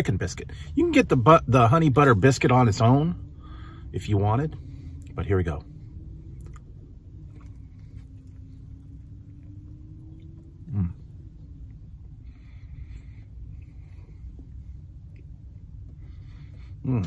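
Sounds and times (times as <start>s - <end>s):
low rumble: 0.0s - 17.0s
person chewing food: 6.4s - 11.0s
person humming mm: 10.6s - 11.1s.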